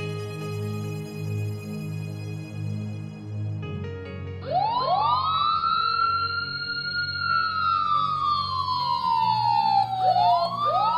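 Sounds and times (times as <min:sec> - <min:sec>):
soft background music: 0:00.0 - 0:10.9
siren wailing: 0:04.4 - 0:10.9.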